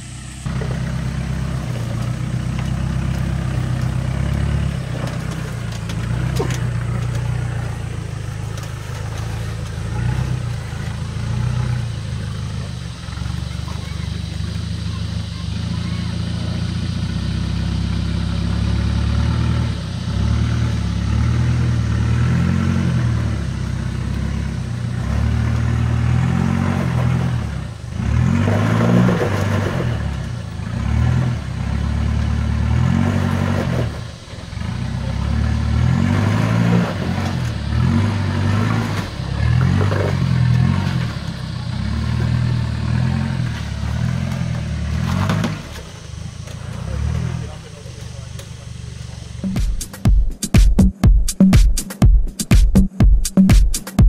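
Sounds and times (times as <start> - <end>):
diesel engine under load: 0.0 - 50.1.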